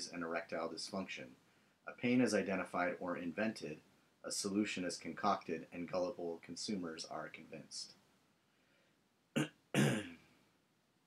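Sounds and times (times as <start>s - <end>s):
person clearing throat: 9.4s - 10.3s.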